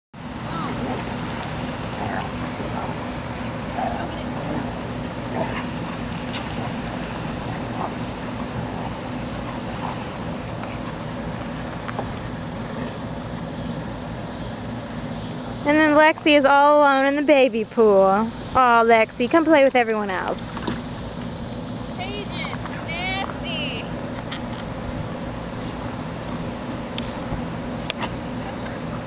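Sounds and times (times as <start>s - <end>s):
low mechanical hum: 0.2s - 29.0s
dogs yipping and barking: 0.5s - 13.8s.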